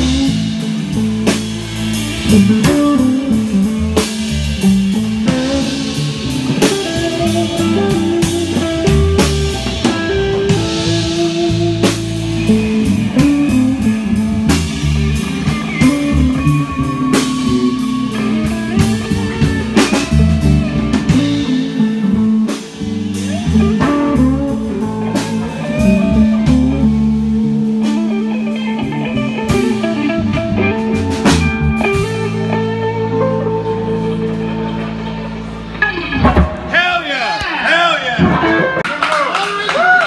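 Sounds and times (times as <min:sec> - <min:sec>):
bass guitar: 0:00.0 - 0:40.0
drum kit: 0:00.0 - 0:40.0
electric guitar: 0:00.0 - 0:40.0.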